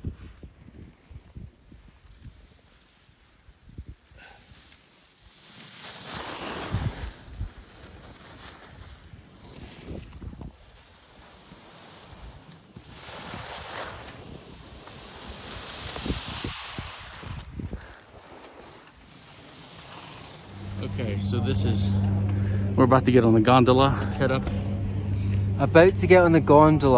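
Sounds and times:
skis scraping on snow: 0.2 - 22.6
wind buffeting microphone: 15.9 - 17.9.

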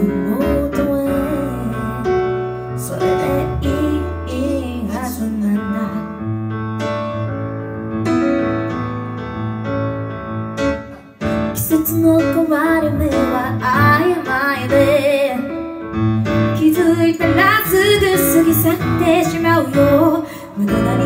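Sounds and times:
woman singing slow song: 0.0 - 2.1, 2.8 - 6.2, 16.6 - 21.0
piano chords: 0.0 - 21.0.

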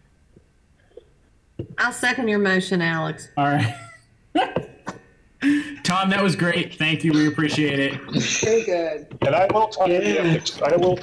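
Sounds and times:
people speaking over video call: 1.6 - 11.0.

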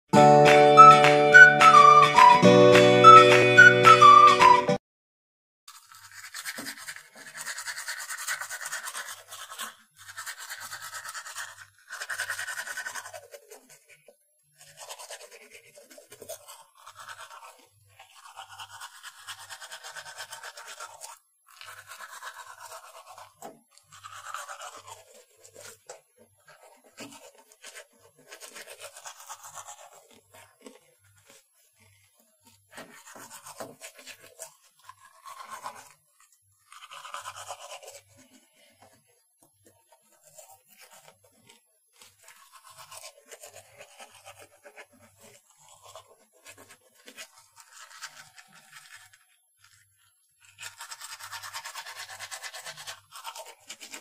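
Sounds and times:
toothbrush scrubbing teeth: 5.7 - 54.0.

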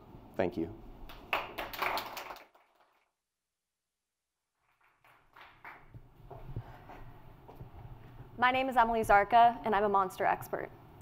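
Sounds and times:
audience clapping: 1.0 - 3.2, 4.6 - 6.2.

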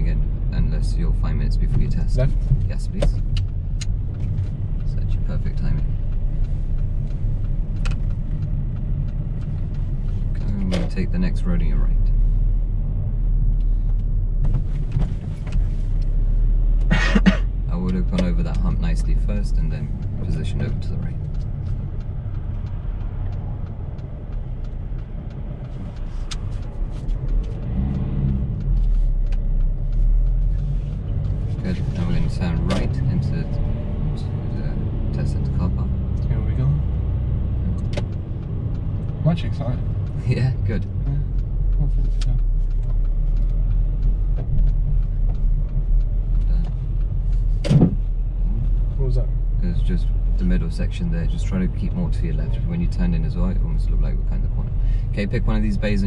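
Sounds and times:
car engine and tyres rumbling: 0.0 - 56.0.

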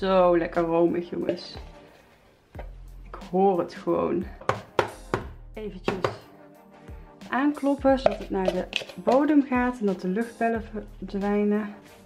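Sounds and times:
spatula knocking on plastic: 4.4 - 6.3, 7.9 - 9.4
spatula scraping plastic bowl: 7.9 - 9.8.

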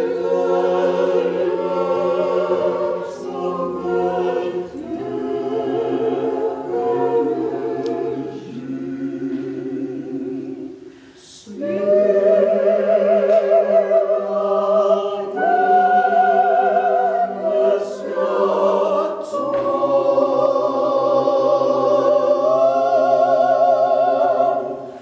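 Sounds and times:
church choir singing a cappella: 0.0 - 25.0.

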